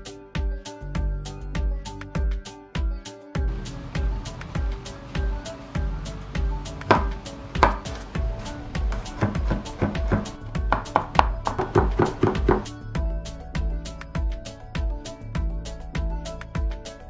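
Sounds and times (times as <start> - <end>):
background music with steady beat: 0.0 - 17.0
knife chopping on wooden board: 6.9 - 8.1, 8.8 - 12.7.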